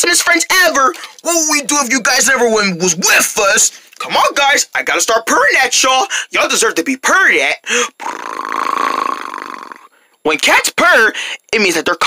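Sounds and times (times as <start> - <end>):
person imitating cat purr: 8.0 - 9.9.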